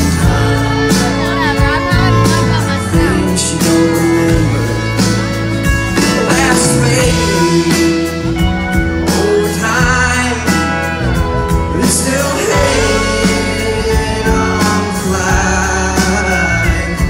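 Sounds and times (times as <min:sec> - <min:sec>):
acoustic guitar strumming: 0:00.0 - 0:17.0
drums and bass: 0:00.0 - 0:17.0.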